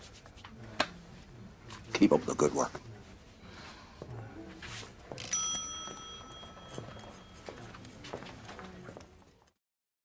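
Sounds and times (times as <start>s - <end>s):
small bell ringing: 5.2s - 7.5s.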